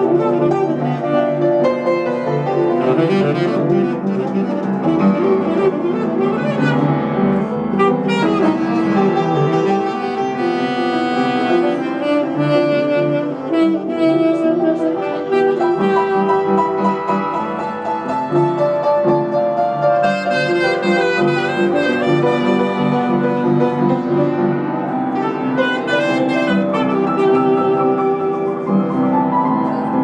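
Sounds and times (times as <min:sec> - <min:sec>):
saxophone melody: 0:00.0 - 0:30.0
upright piano accompaniment: 0:00.0 - 0:30.0.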